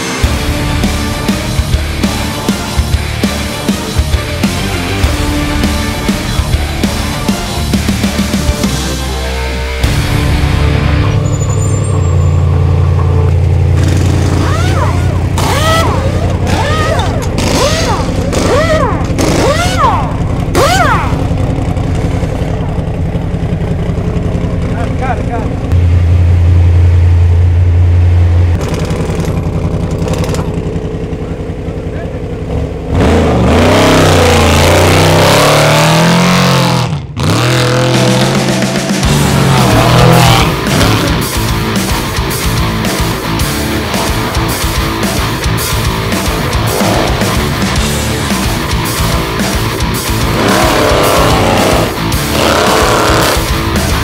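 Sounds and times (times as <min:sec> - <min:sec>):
truck engine idling and revving: 0:00.0 - 0:54.0
crew shouting: 0:14.3 - 0:21.4.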